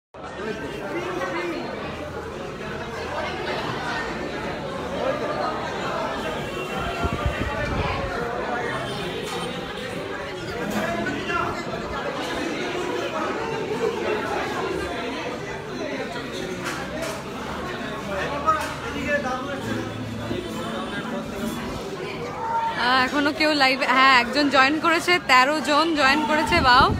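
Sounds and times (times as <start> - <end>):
chatter of voices: 0.2 - 26.9
people talking: 0.2 - 26.9
woman talking: 22.8 - 26.9.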